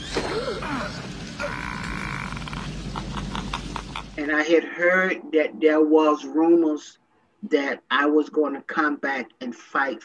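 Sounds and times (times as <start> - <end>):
man's strained growling cry: 0.4 - 2.9.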